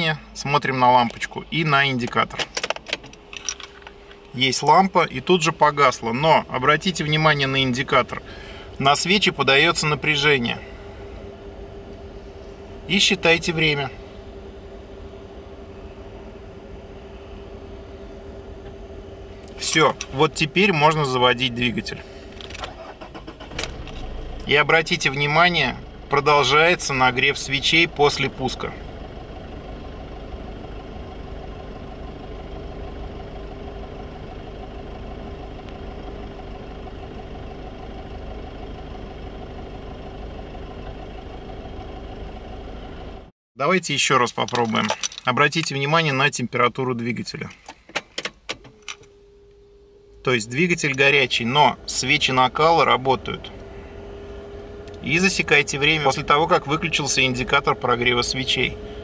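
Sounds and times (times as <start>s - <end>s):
diesel engine starting and idling: 0.0s - 59.0s
key jingling and clicking in lock: 2.4s - 4.2s, 44.4s - 45.4s
faint steady tone: 48.6s - 59.0s.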